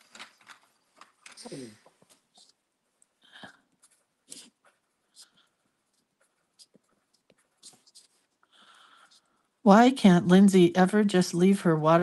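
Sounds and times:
pencil scratching on paper: 4.2 - 9.4.

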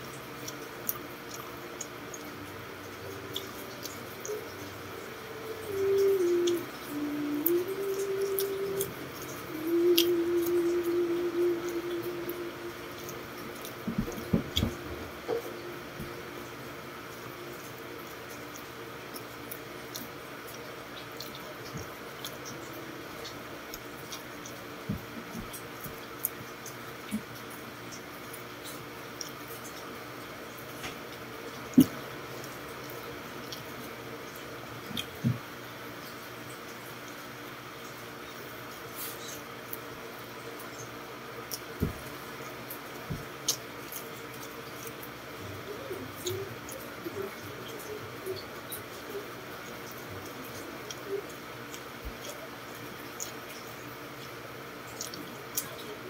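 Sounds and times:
man chewing and smacking lips: 0.0 - 56.0
steady low hum: 0.0 - 56.0.

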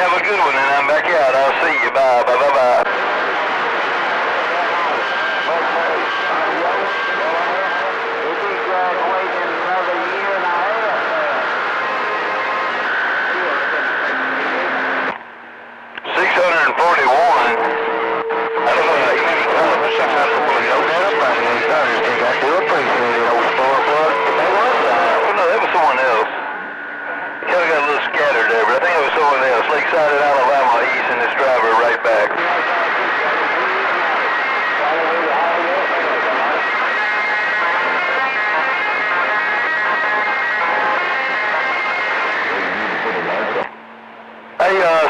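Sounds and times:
garbled radio voices: 0.0 - 43.8, 44.5 - 45.0
radio static hiss: 0.0 - 45.0.

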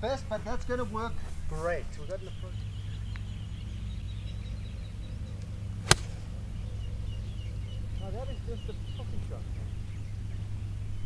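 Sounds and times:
steady low rumble: 3.3 - 8.8
golf club striking ball: 5.8 - 6.6.

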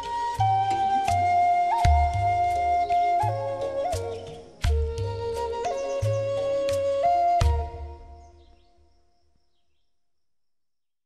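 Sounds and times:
flute note: 0.0 - 8.5.

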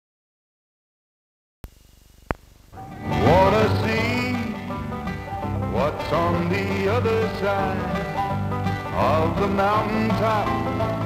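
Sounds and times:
film soundtrack hiss: 1.7 - 8.9
country music with sliding notes: 2.8 - 11.0.

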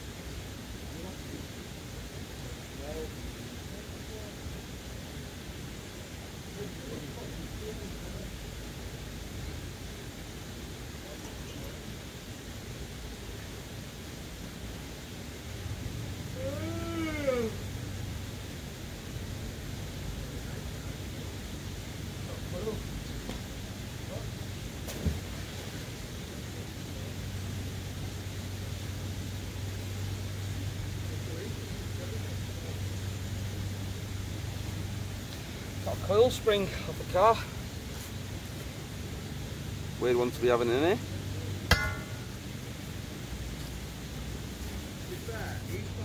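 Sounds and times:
low hum: 41.0 - 45.0.

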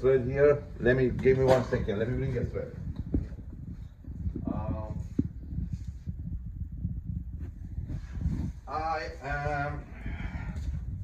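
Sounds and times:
knocking and rumbling movement: 0.0 - 11.0.

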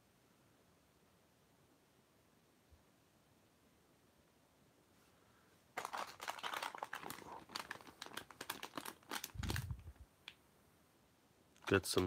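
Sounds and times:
plastic packaging crinkling: 5.8 - 10.4.

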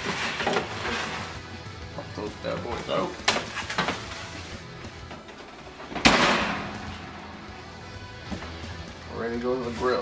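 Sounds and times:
background music: 0.0 - 10.0
oven door slamming: 5.8 - 7.0.

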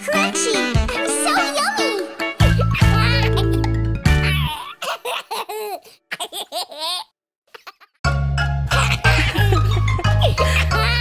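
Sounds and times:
cartoon characters laughing: 0.2 - 8.0, 8.7 - 11.0.

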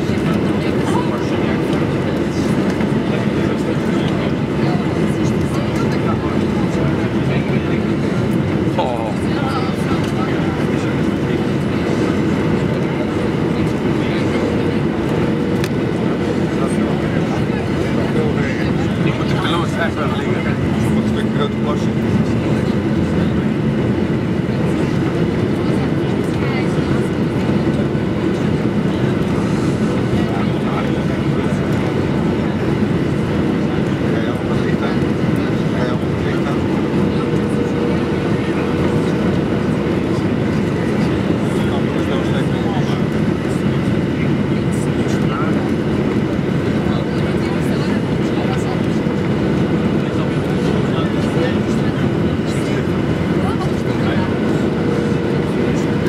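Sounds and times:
jet engine rumble: 0.0 - 56.0.

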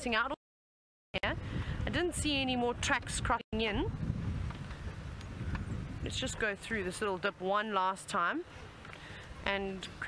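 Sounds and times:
wind buffeting microphone: 1.2 - 7.6.

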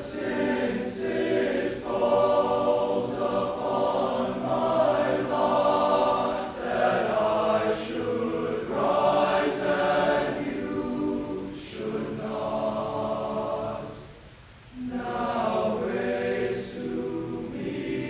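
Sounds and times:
male choir singing: 0.0 - 14.1, 14.8 - 18.0.

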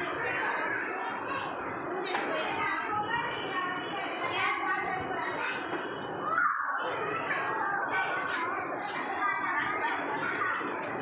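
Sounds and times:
young children chattering at play: 0.0 - 11.0.

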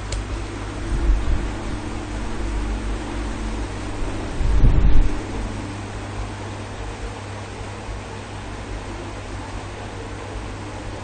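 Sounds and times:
microphone hum and hiss: 0.0 - 11.0.

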